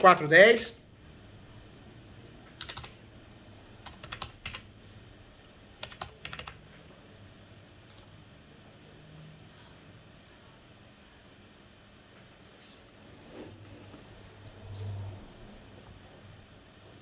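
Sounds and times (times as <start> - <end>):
computer keyboard typing: 2.4 - 3.0, 3.8 - 4.9, 5.7 - 6.9, 7.8 - 8.1.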